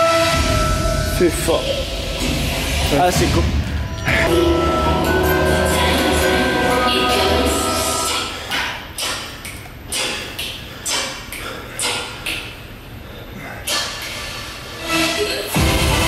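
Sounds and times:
background music: 0:00.0 - 0:08.5, 0:14.4 - 0:16.0.

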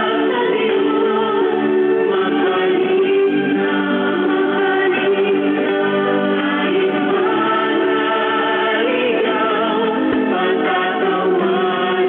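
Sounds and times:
group singing gospel song: 0:00.0 - 0:12.0.

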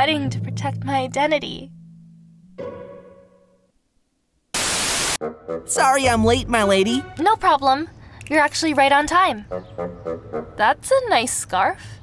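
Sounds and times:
tv static hiss: 0:04.5 - 0:05.2.

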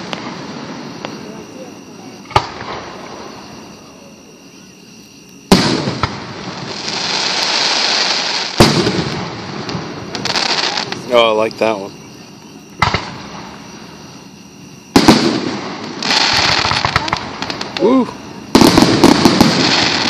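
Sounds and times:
firework bangs: 0:00.0 - 0:04.0, 0:05.4 - 0:11.9, 0:12.7 - 0:20.0
firework crackling hiss: 0:00.0 - 0:20.0.

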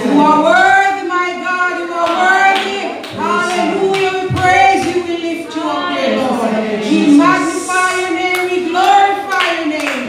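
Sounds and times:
women singing worship song: 0:00.0 - 0:10.0
hands clapping along: 0:02.0 - 0:05.0, 0:07.8 - 0:10.0.

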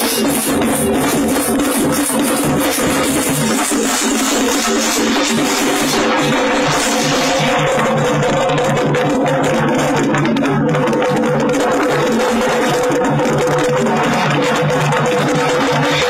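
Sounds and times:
repeating low beat: 0:00.0 - 0:16.0.

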